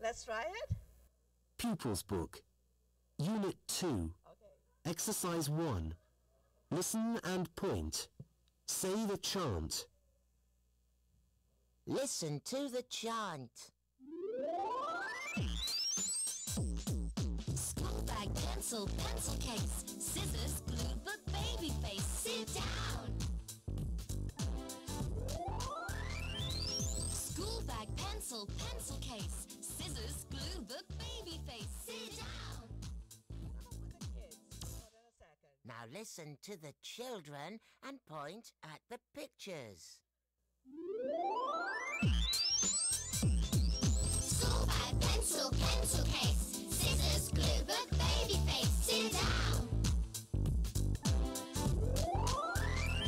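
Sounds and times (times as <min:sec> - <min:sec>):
synthesizer tone sweeping upward: 0:14.0 - 0:16.4, 0:25.2 - 0:27.2, 0:40.7 - 0:44.2, 0:51.9 - 0:53.0
drum-machine bass drum beats: 0:16.6 - 0:25.4, 0:26.4 - 0:34.9, 0:42.9 - 0:53.0.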